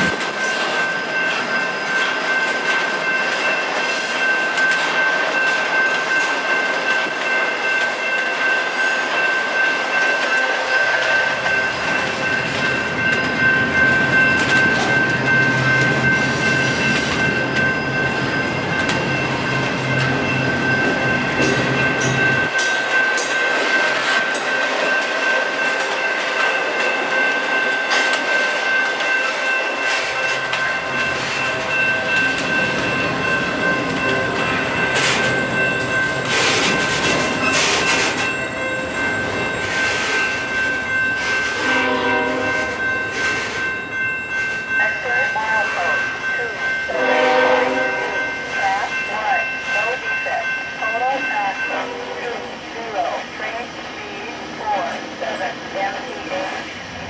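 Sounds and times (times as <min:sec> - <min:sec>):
train wheels on rails: 0:00.0 - 0:57.0.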